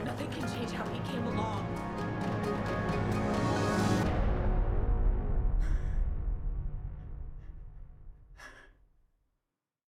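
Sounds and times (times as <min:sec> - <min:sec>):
low musical drone: 0:00.0 - 0:08.0
woman gasping: 0:08.4 - 0:08.8.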